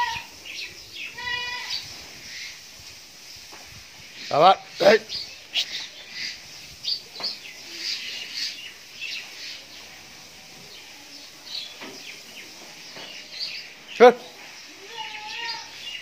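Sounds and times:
small birds chirping: 0.0 - 16.0.

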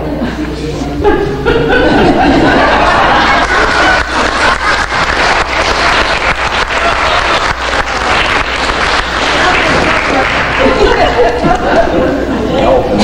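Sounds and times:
audience applauding: 2.6 - 11.4
voices: 9.2 - 13.0.

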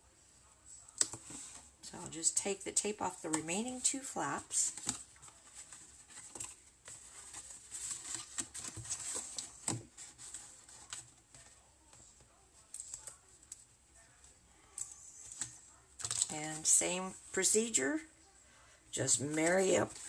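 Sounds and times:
cardstock rustling: 2.8 - 13.6, 19.1 - 20.0.

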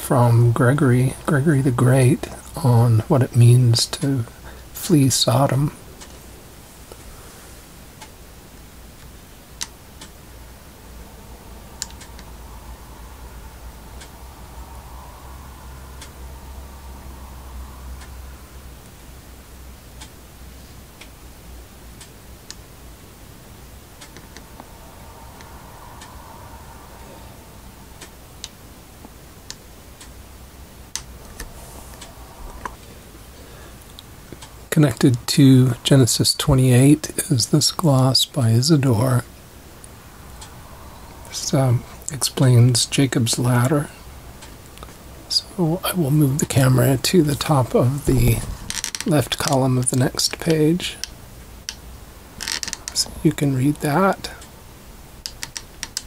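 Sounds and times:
low hiss: 0.0 - 56.0
faint ticks and clicks: 11.7 - 16.2, 16.9 - 22.7, 24.0 - 26.4, 28.0 - 30.2, 33.8 - 35.4, 47.4 - 53.4, 54.2 - 56.0.

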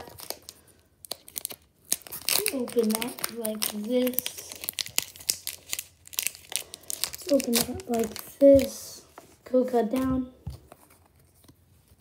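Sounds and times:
foil wrapper tearing and crinkling: 0.0 - 8.8.

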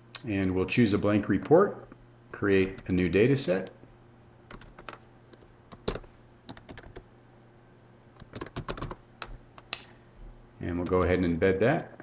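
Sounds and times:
faint steady hum: 0.0 - 12.0
keyboard typing: 4.5 - 7.0, 8.2 - 9.7.

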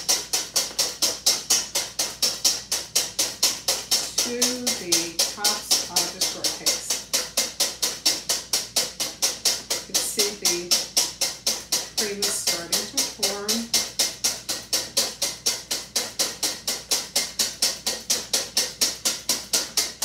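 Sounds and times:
whisk beating against metal bowl: 0.0 - 20.0.

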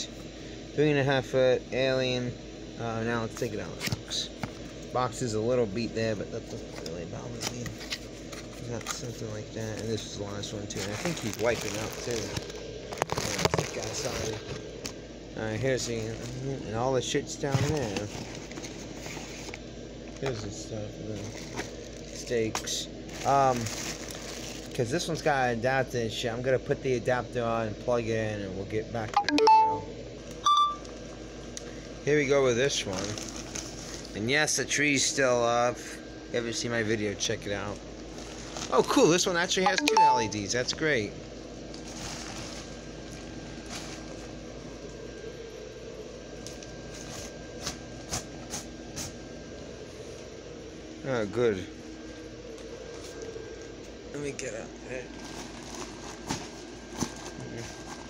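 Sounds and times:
blower fan whirring: 0.0 - 58.0
short electronic beep: 29.2 - 30.8, 39.7 - 40.4.

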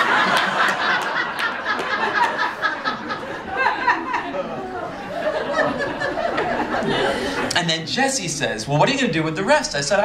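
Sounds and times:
audience laughter: 0.0 - 7.5.

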